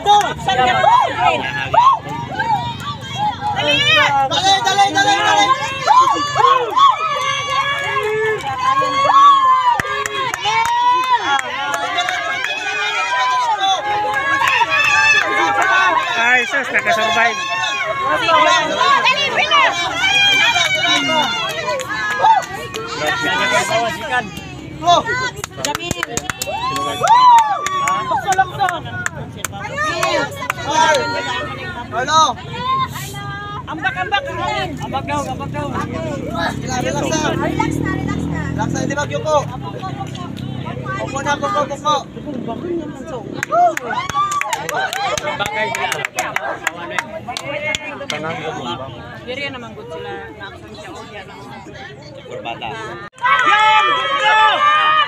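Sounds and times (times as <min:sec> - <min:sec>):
crowd chatter: 0:00.0 - 0:55.0
people talking: 0:00.0 - 0:55.0
spectators shouting and cheering: 0:00.0 - 0:55.0.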